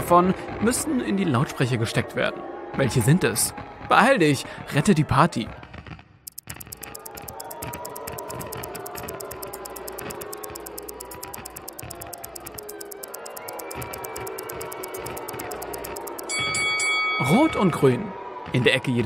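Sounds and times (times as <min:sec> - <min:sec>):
countdown timer ticking: 0:06.3 - 0:16.6.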